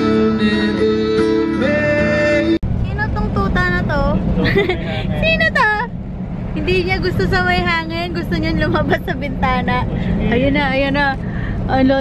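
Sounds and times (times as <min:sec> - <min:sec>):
man singing with acoustic guitar: 0:00.0 - 0:02.6
car interior rumble: 0:00.0 - 0:12.0.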